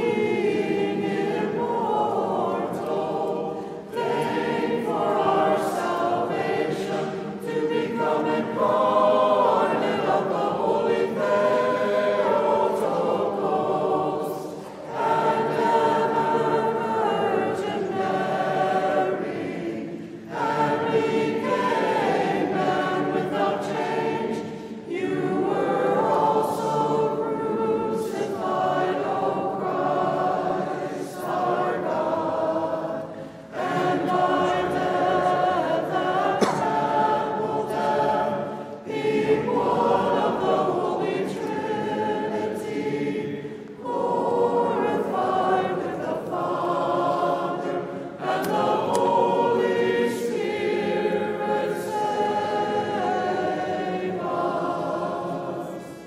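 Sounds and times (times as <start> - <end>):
group singing a cappella chant: 0.0 - 56.0.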